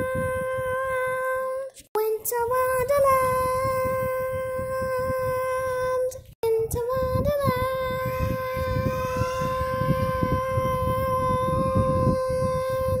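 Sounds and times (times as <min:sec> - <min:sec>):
microphone handling rumble: 0:00.0 - 0:13.0
person singing long note: 0:07.7 - 0:13.0.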